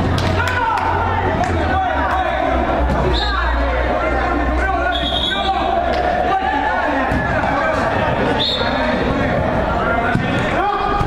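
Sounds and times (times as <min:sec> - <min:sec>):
players calling and shouting: 0:00.0 - 0:11.0.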